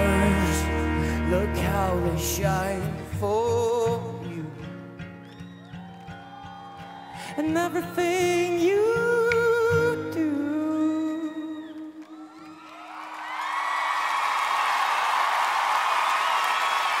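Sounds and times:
crowd cheering and applauding: 0:00.0 - 0:03.1, 0:05.1 - 0:08.6, 0:10.9 - 0:17.0
man singing: 0:00.0 - 0:04.8, 0:07.2 - 0:11.9
acoustic guitar and band: 0:00.0 - 0:12.0
whoops and whistles: 0:05.2 - 0:07.5, 0:11.1 - 0:13.1.

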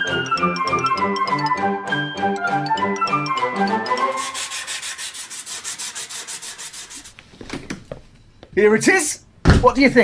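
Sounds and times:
sandpaper rasping on wood: 0:04.0 - 0:07.2.

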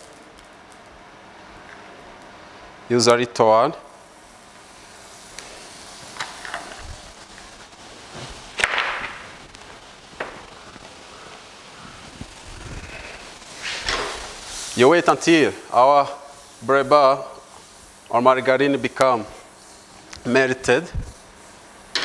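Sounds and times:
margarine sizzling in pan: 0:03.9 - 0:12.5, 0:13.1 - 0:20.2.

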